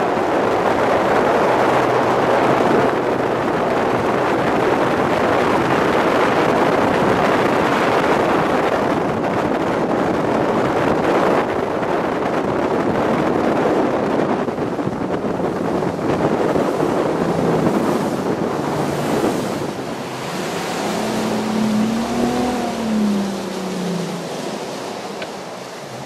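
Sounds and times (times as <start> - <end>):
outboard motor drone: 0.0 - 26.0
water rushing along hull: 0.0 - 26.0
wind buffeting microphone: 0.0 - 26.0.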